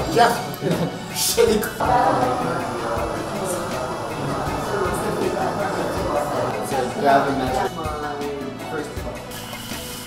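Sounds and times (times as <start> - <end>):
background music: 0.0 - 10.0
faint voices: 1.8 - 8.4.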